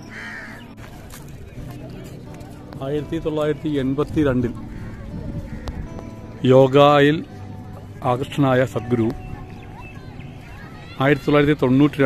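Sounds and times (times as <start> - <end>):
faint voices: 0.0 - 12.0
crow cawing: 0.1 - 0.6, 4.7 - 5.9.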